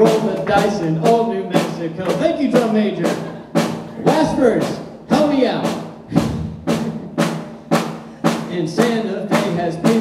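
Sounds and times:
steady drum beat: 0.0 - 10.0.

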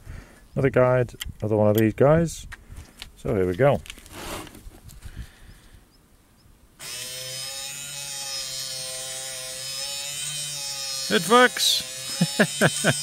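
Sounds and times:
electric motor whining: 6.8 - 13.0.

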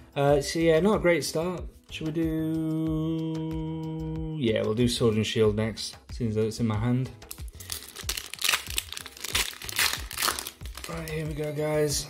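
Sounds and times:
foil wrapper crinkling and tearing: 7.3 - 11.9.

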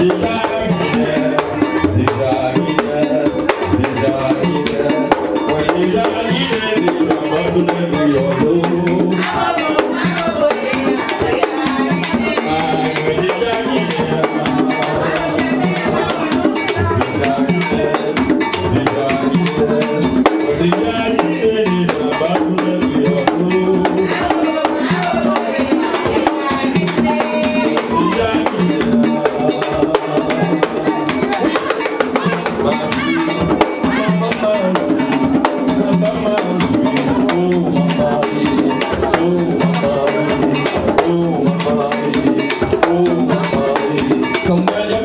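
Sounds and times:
hand drums and percussion: 0.0 - 45.0
voices singing: 0.0 - 45.0.

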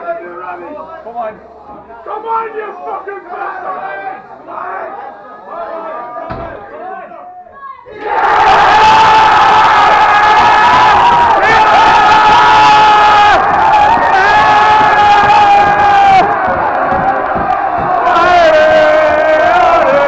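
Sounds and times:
crowd cheering and screaming: 7.9 - 20.0.

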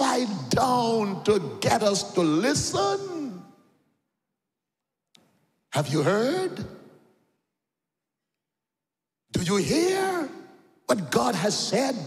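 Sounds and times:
man's amplified voice: 0.0 - 3.6, 5.7 - 7.0, 9.3 - 12.0.

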